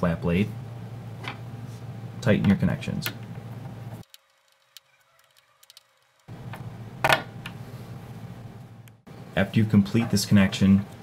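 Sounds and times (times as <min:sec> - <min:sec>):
steady low hum: 0:00.0 - 0:11.0
small screwdriver ticking: 0:04.0 - 0:06.3.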